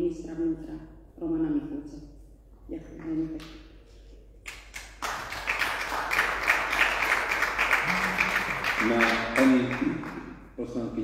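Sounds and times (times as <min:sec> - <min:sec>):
group clapping: 0:04.4 - 0:10.4.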